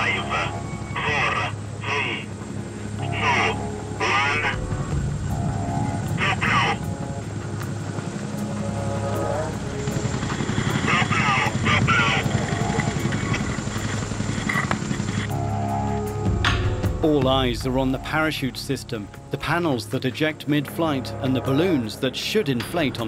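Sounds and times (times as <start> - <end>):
voices calling out: 0.0 - 4.9, 5.8 - 6.9, 10.5 - 13.2
helicopter drone overhead: 0.0 - 23.0.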